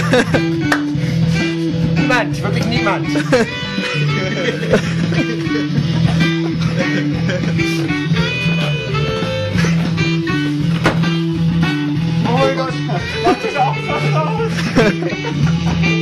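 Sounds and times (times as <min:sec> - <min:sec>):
repeating bass line: 0:00.0 - 0:16.0
rock guitar playing: 0:00.0 - 0:16.0
voices in the room: 0:12.0 - 0:14.9.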